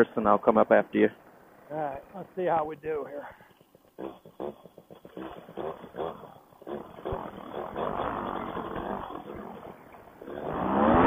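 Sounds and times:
muffled paramotor engine: 1.6s - 11.0s.

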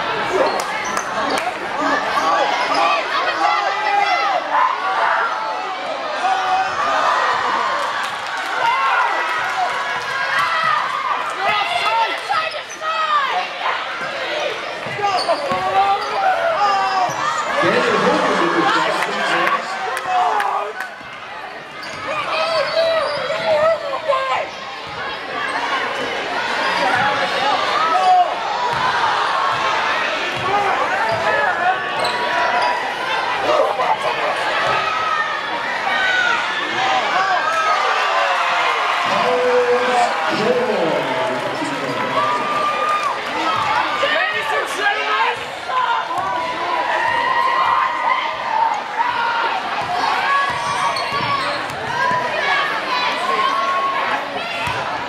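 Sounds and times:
crowd chatter and calls: 0.0s - 55.0s.

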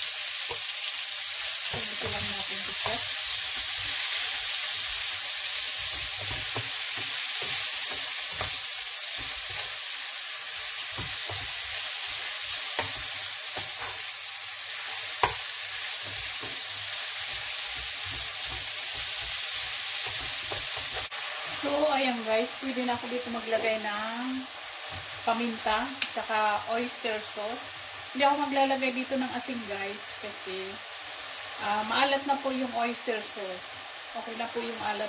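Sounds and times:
mushrooms sizzling in frying pan: 0.0s - 35.0s
spatula tapping and scraping pan: 1.7s - 4.1s, 5.8s - 9.8s, 10.8s - 14.1s, 14.8s - 21.1s.

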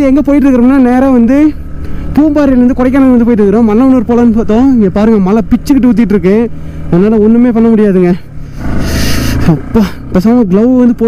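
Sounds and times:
man talking: 0.0s - 1.6s, 2.2s - 8.3s, 9.4s - 11.0s
motorcycle engine drone: 0.0s - 11.0s.

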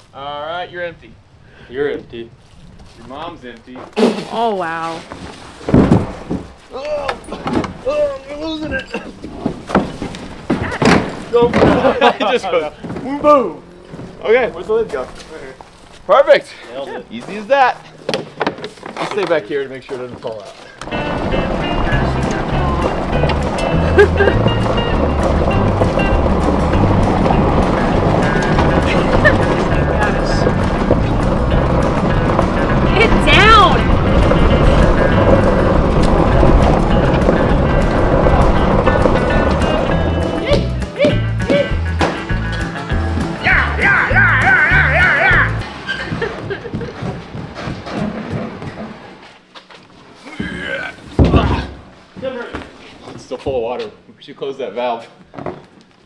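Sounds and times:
loud thump: 5.6s - 6.5s, 51.1s - 51.9s.

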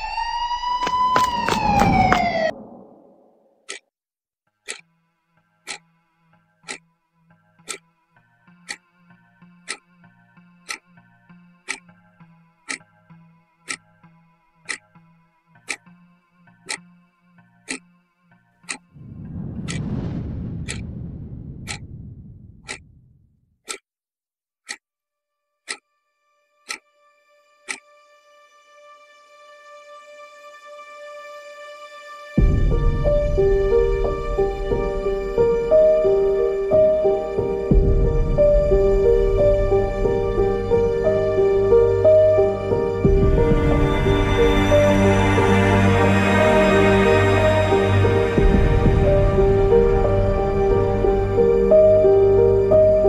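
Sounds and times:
clock ticking: 4.6s - 4.9s, 5.6s - 5.9s, 6.6s - 6.8s, 7.6s - 7.9s, 8.6s - 8.8s, 9.6s - 9.9s, 10.6s - 10.9s, 11.6s - 12.0s, 12.7s - 12.9s, 13.7s - 13.9s, 14.7s - 14.9s, 15.7s - 15.9s, 16.7s - 16.9s, 17.7s - 17.9s, 18.6s - 18.9s, 19.6s - 19.9s, 20.7s - 20.9s, 21.7s - 21.9s, 22.6s - 22.9s, 23.6s - 23.8s
deep rumbling swell: 18.8s - 23.2s, 32.4s - 53.0s
faint low drone: 32.4s - 53.0s
held music notes: 32.4s - 53.0s.

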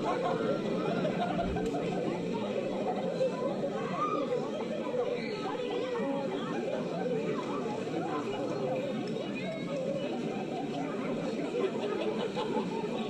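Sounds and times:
babble of many voices: 0.0s - 13.0s.

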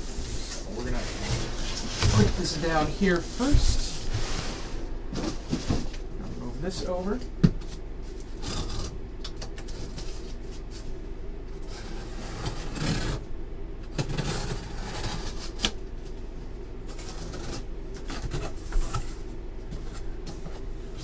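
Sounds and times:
steady low hum: 0.0s - 21.0s
cardboard scraping and rustling: 0.3s - 7.0s.

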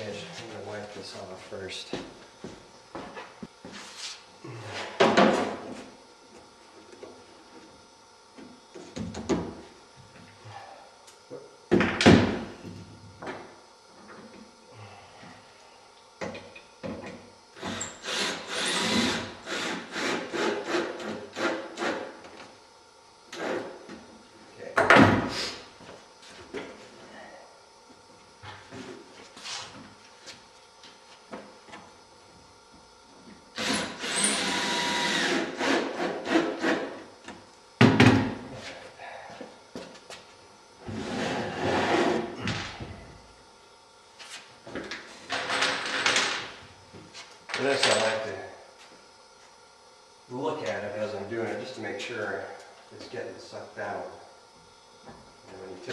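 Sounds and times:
cordless drill driving screws: 17.6s - 20.8s, 33.6s - 36.1s.

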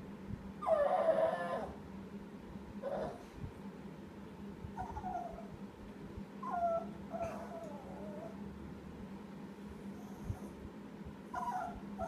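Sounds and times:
small dog whining: 0.6s - 1.8s, 2.8s - 3.3s, 4.8s - 5.5s, 6.4s - 8.4s, 11.3s - 12.0s.

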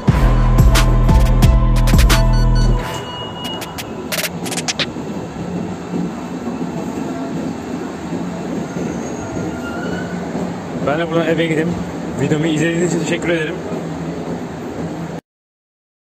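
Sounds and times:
background music: 0.0s - 3.9s
subway train running: 0.0s - 15.2s
sharp clicks: 3.5s - 4.9s.

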